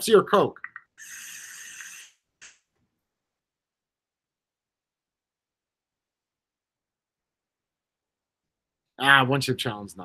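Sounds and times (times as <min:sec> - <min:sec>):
airy hiss of vape: 0:01.0 - 0:02.2.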